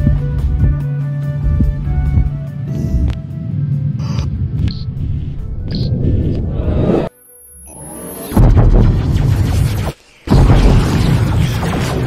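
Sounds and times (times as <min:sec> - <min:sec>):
background music with heavy bass: 0:00.0 - 0:06.3.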